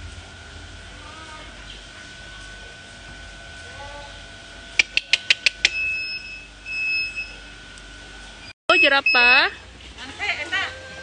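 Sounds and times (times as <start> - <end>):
faint high whine: 5.7 - 9.7
long high-pitched beeps: 8.7 - 9.7.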